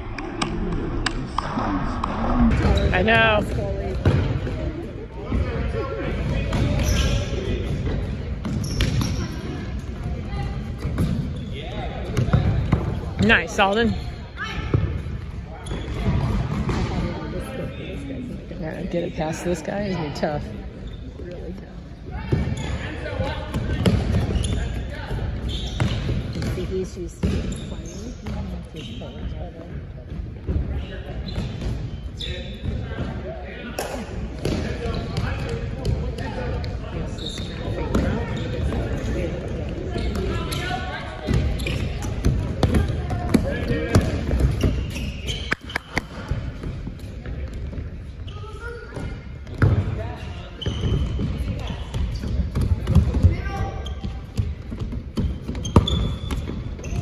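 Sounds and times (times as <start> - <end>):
voices echoing in hall: 0.0 - 57.0.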